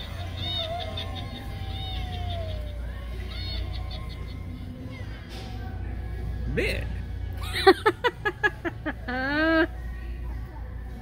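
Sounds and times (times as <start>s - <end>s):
toy cackling through small speaker: 0.0s - 4.7s.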